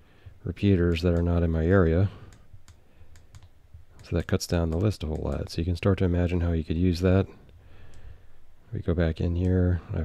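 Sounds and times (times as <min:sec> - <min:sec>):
radio keys clicking: 0:00.8 - 0:01.5.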